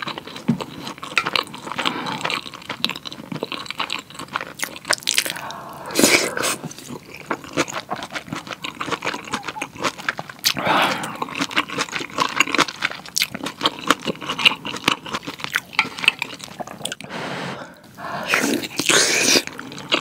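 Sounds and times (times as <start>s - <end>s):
close chewing with wet clicks: 0.0s - 5.6s, 6.8s - 17.1s.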